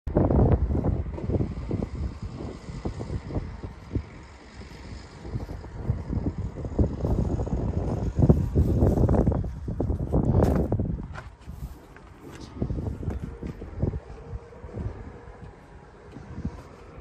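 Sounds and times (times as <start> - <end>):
wind buffeting microphone: 0.1 - 17.0.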